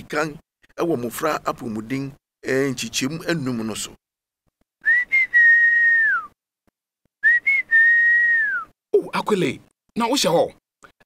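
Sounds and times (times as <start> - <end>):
whistled call: 4.8 - 6.4, 7.2 - 8.7.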